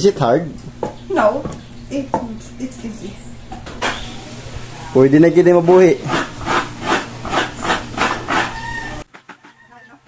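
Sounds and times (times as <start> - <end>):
coconut grater rasping: 5.5 - 9.9.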